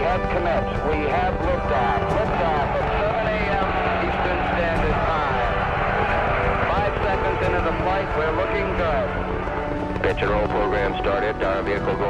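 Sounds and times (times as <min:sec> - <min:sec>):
indistinct voices: 0:00.0 - 0:12.0
rocket engines rumbling: 0:00.0 - 0:12.0.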